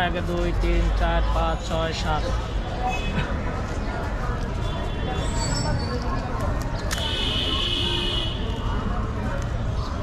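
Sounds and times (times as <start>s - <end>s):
traffic rumble: 0.0s - 10.0s
voices: 0.0s - 10.0s.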